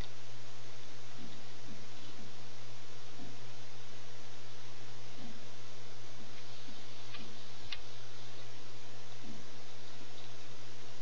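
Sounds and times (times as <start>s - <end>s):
low hum: 0.0s - 11.0s
steady hiss: 0.0s - 11.0s.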